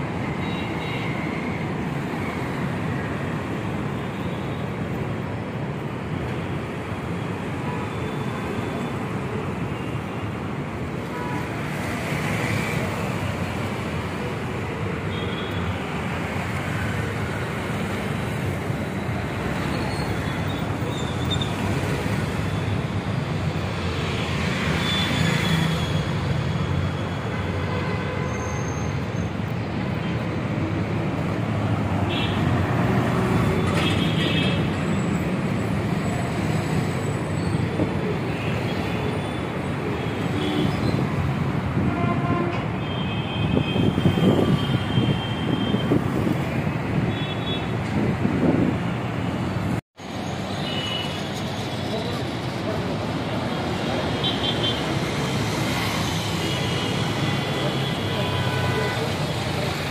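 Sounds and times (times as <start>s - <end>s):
road traffic noise: 0.0s - 59.9s.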